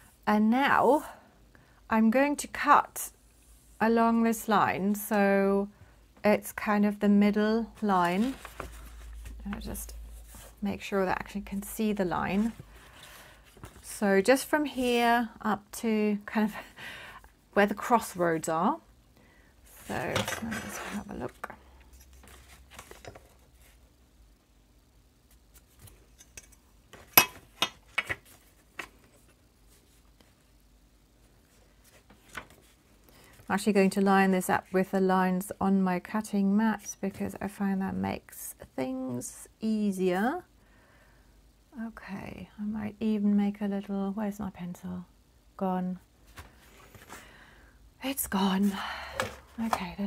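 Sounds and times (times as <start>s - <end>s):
paper rustling: 7.7s - 10.6s, 12.3s - 14.0s, 22.0s - 23.8s, 31.5s - 33.4s.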